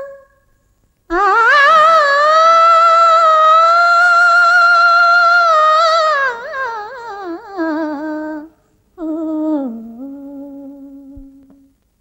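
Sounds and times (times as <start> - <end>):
woman humming a melody: 0.0 - 0.4, 1.1 - 11.8.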